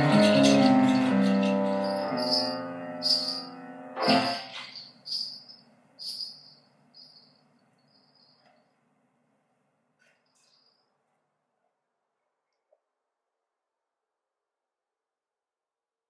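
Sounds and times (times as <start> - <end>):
piano chord: 0.0 - 4.6
small high-pitched bell ringing: 1.8 - 3.5.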